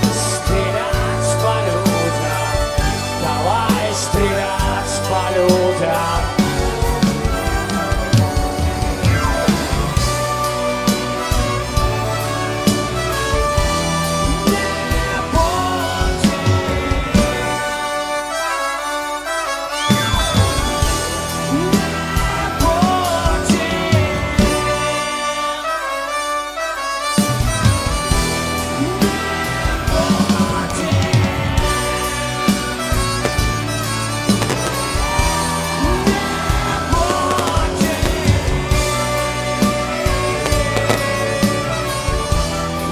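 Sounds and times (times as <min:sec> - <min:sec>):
rock band with orchestra: 0:00.0 - 0:42.9
trumpet melody with sliding notes: 0:00.0 - 0:42.9
steady drum beat: 0:27.7 - 0:42.9
melody over held chords: 0:33.0 - 0:39.1.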